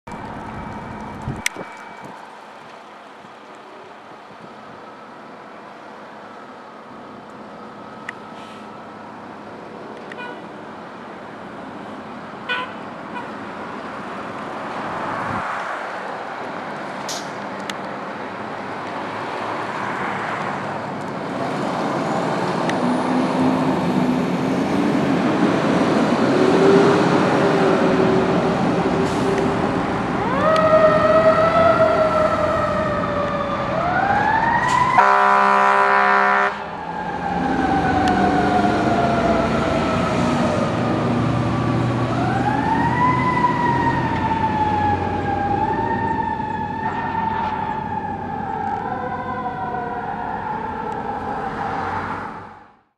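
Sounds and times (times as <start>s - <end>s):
siren wailing: 0.1s - 2.6s, 26.4s - 52.5s
air horn blast: 35.0s - 36.6s.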